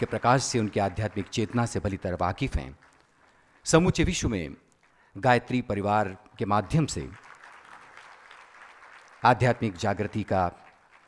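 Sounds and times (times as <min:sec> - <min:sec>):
audience applause: 0:00.0 - 0:03.5, 0:07.1 - 0:11.0.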